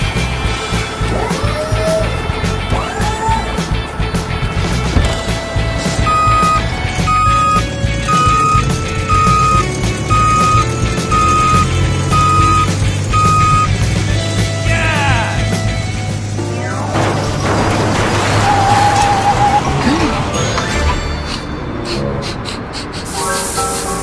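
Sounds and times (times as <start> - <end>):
background music: 0.0 - 24.0
high repeating beep: 6.1 - 13.7.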